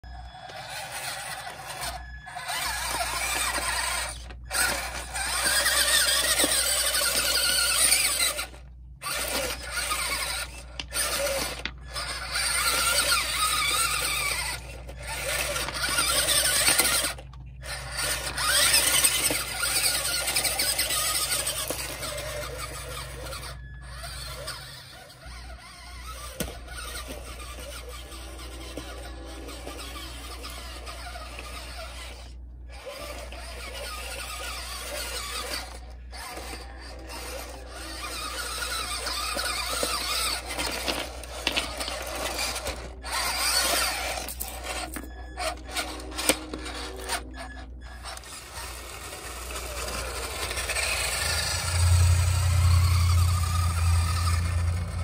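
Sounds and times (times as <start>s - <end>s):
toy truck motor whining: 0.0s - 55.0s
tyres scrabbling on stones: 0.7s - 55.0s.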